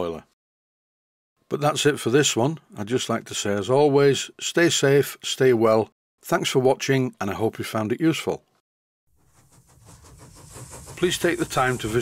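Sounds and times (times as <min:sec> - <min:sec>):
steam hissing: 0:09.2 - 0:12.0.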